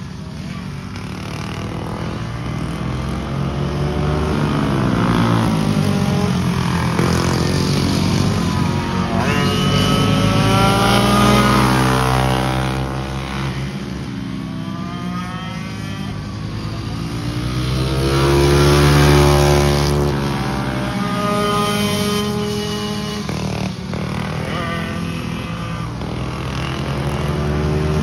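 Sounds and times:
go-kart engine accelerating: 0:00.0 - 0:28.0.

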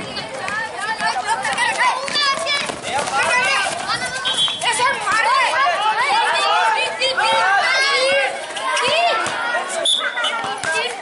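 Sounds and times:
children shouting: 0:00.0 - 0:11.0.

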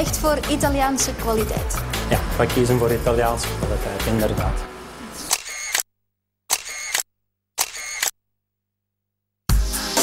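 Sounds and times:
camera shutter clicking: 0:05.3 - 0:05.8, 0:06.5 - 0:08.2.

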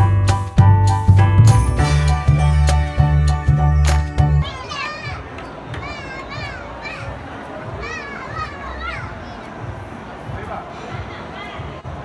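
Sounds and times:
indoor background babble: 0:03.9 - 0:12.0
children calling and squealing: 0:04.1 - 0:09.9.

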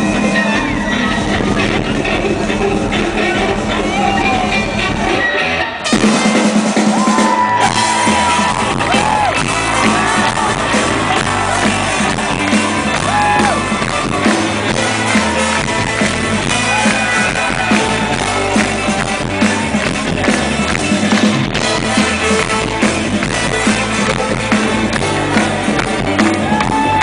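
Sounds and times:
crowd shouting and whooping: 0:00.0 - 0:27.0
live rock band playing: 0:00.0 - 0:27.0.

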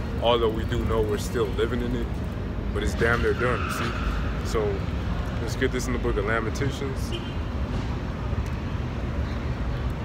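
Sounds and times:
city street rumble: 0:00.0 - 0:10.0.

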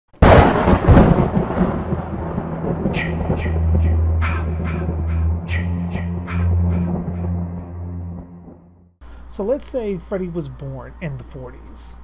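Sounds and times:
thunderclap: 0:00.2 - 0:08.9
eerie music hits: 0:01.3 - 0:09.0
low steady drone: 0:02.1 - 0:09.0.

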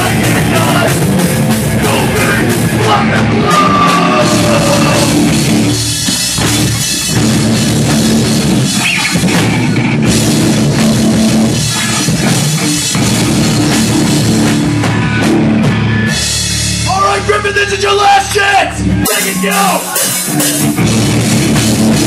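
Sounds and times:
distorted electric guitars: 0:00.0 - 0:22.0
drum kit playing: 0:00.0 - 0:22.0.

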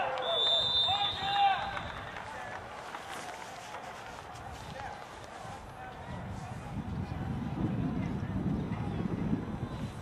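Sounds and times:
distant players shouting: 0:00.0 - 0:02.6.

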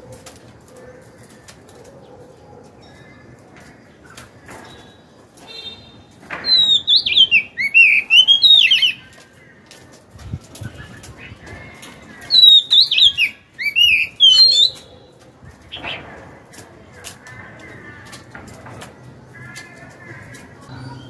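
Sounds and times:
bird singing whistled notes: 0:06.5 - 0:09.1, 0:12.3 - 0:14.8.

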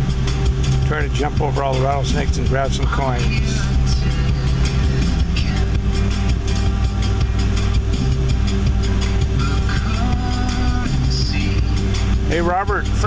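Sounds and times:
car stereo music: 0:00.0 - 0:13.0
engine and road rumble: 0:00.0 - 0:13.0.

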